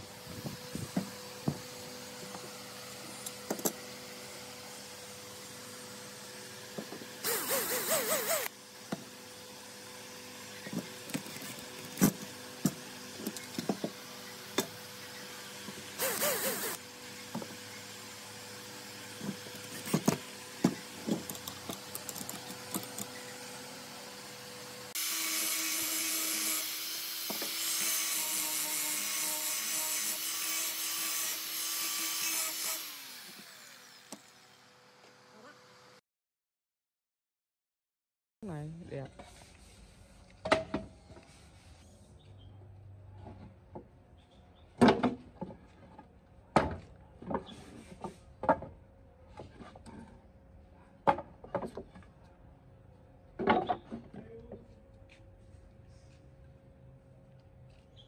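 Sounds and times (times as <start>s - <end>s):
power tool running: 0.0s - 36.0s.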